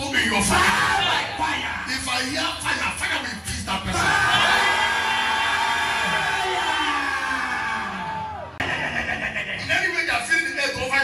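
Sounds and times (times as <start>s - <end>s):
lively voices: 0.0s - 11.0s
congregation voices: 3.7s - 9.9s
long held shout: 4.0s - 8.6s.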